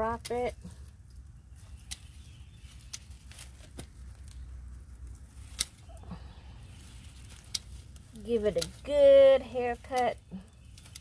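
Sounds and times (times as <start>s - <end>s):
pruning shears snipping stems: 0.0s - 4.4s, 5.2s - 11.0s.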